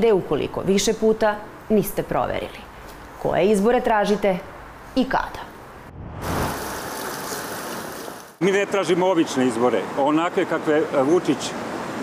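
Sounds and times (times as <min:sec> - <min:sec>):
rumbling whoosh effect: 0:05.8 - 0:07.0.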